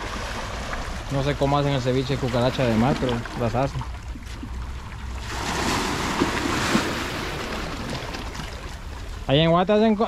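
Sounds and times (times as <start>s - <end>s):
sea waves washing against rocks: 0.0s - 9.5s.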